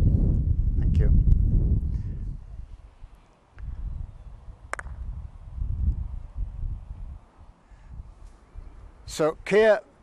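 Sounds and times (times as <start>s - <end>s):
wind rumble on microphone: 0.0s - 9.2s
croquet mallet striking ball: 4.7s - 5.0s.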